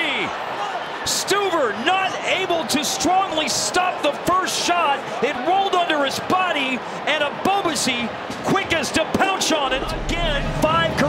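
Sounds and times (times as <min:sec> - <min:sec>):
commentators talking: 0:01.0 - 0:11.0.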